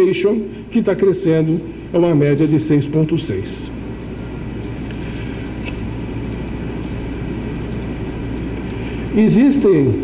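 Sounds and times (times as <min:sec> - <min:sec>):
low electrical hum: 0:00.0 - 0:10.0
low room rumble: 0:00.0 - 0:10.0.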